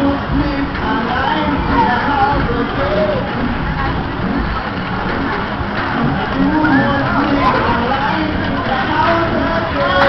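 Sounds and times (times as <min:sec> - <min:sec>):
ride rumbling and rushing: 0:00.0 - 0:09.9
music playing: 0:00.0 - 0:10.0.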